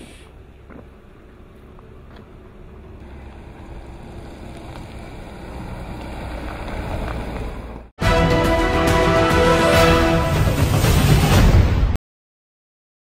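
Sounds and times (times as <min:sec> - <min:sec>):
vehicle engine rumbling: 0:00.0 - 0:08.0.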